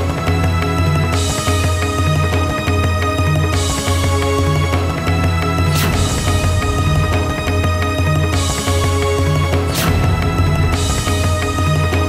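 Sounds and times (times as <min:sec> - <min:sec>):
sustained music chords: 0:00.4 - 0:12.0.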